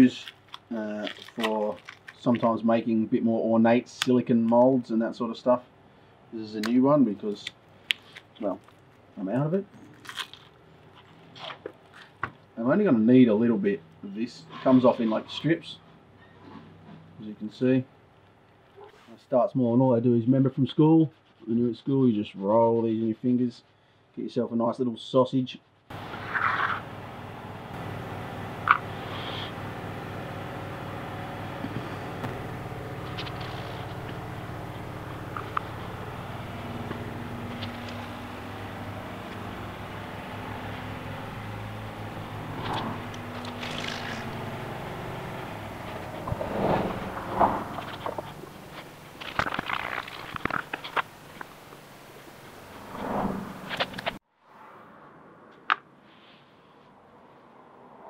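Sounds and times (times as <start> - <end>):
machine-like hum: 25.9 - 54.2.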